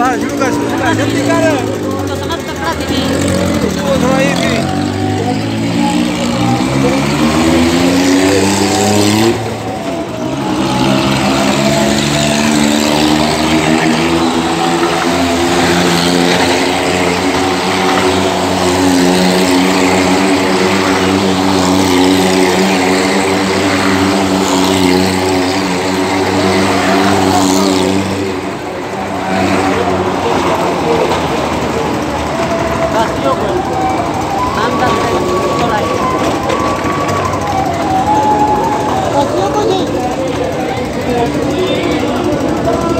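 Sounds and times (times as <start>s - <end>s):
small car engine revving: 0.0s - 42.9s.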